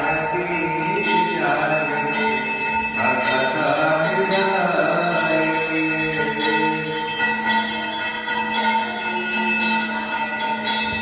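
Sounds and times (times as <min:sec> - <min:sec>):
bells ringing: 0:00.0 - 0:11.0.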